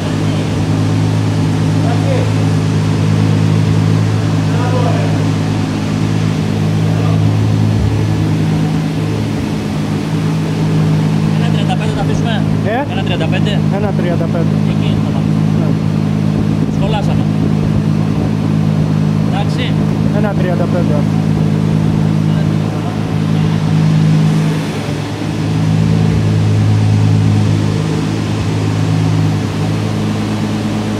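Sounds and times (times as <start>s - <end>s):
car engine running steadily: 0.0s - 30.9s.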